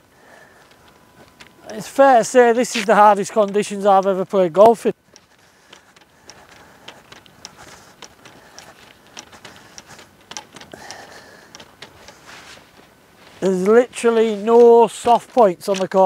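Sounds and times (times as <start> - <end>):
light wind hiss: 0.0 - 16.0
golf clubs knocking together: 5.1 - 12.5.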